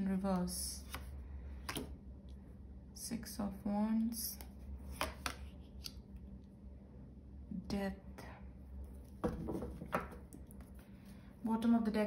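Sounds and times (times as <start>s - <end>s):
soft card handling: 0.7s - 2.0s, 4.3s - 6.4s
cards snapping and swishing: 4.9s - 6.0s.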